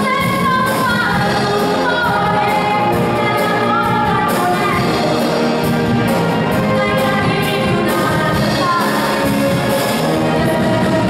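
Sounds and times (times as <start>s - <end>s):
woman singing with vibrato: 0.0s - 5.4s, 6.4s - 11.0s
concert wind band with brass: 0.0s - 11.0s.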